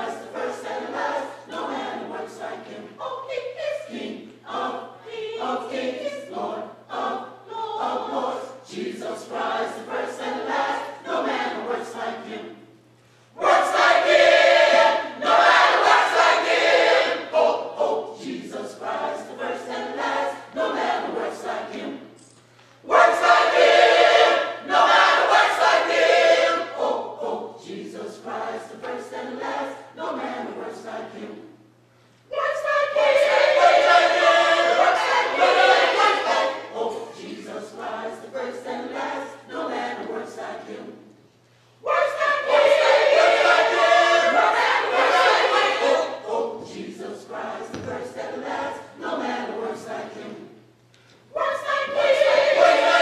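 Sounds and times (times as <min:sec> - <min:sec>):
gospel choir singing: 0:00.0 - 0:31.7, 0:32.3 - 0:53.0.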